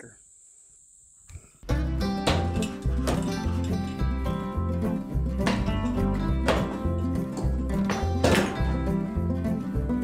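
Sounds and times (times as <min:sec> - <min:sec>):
insects chirring: 0:00.0 - 0:01.7.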